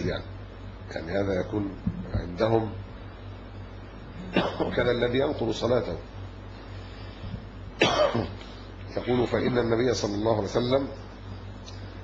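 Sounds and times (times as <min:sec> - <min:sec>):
low steady hum: 0:00.0 - 0:12.0
man coughing: 0:04.2 - 0:04.9, 0:07.8 - 0:08.4.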